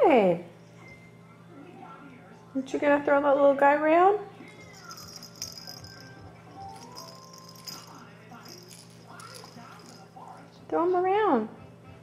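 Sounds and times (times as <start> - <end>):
plush toy soft jingly rattling: 4.4 - 10.6.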